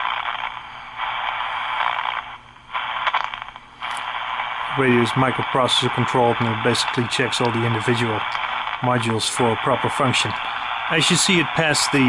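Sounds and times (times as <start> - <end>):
radio receiver hiss and static: 0.0 - 12.0.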